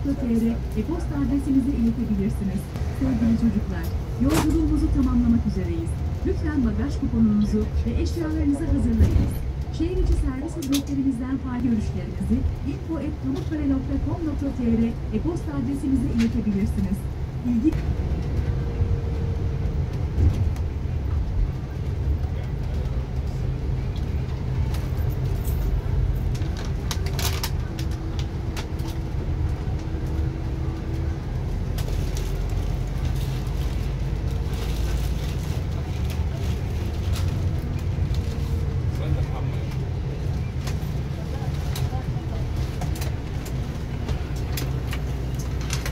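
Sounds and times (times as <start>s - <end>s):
coach diesel engine rumble: 0.0s - 45.9s
road noise: 0.0s - 45.9s.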